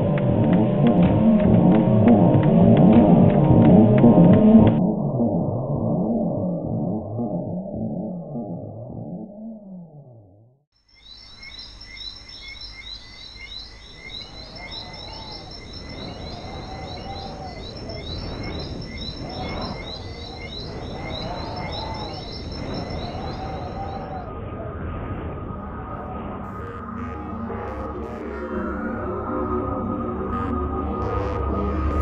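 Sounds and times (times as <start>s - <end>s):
steady rushing background: 0.0s - 6.1s, 13.4s - 32.0s
high bird chirps: 10.9s - 24.2s
lower arched bird call: 11.4s - 24.3s
music with slow gliding tones: 14.0s - 32.0s.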